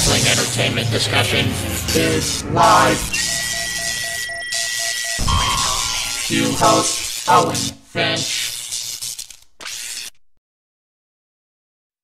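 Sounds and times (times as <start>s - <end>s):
steady high tone: 0.8s - 8.2s.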